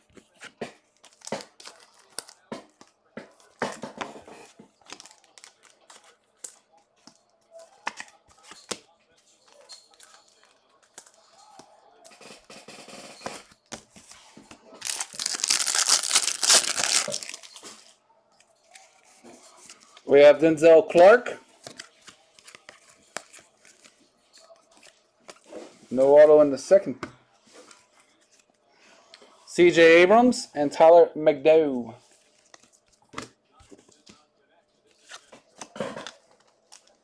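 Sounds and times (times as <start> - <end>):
foil wrapper tearing: 14.8 - 17.6
foil wrapper crinkling: 14.8 - 17.9.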